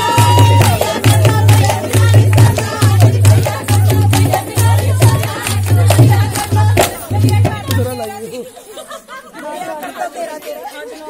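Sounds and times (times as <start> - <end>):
women chattering: 7.8 - 11.0.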